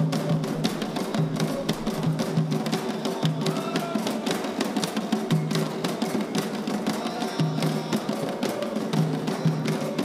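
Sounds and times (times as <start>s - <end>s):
hand drums struck: 0.0s - 10.0s
voices singing: 0.0s - 10.0s.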